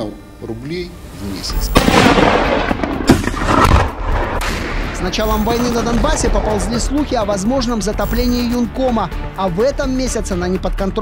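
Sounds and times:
sharp bang: 1.6 - 6.4
rumbling crackling explosion: 1.6 - 6.9.

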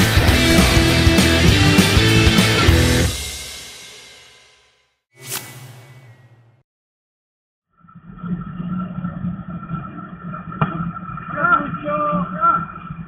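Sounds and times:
whoosh transition effect: 5.2 - 6.6.

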